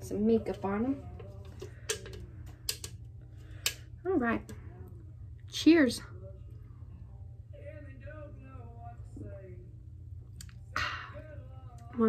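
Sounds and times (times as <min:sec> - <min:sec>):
steady low hum: 0:00.0 - 0:12.0
small objects clicking and tapping: 0:01.4 - 0:03.0.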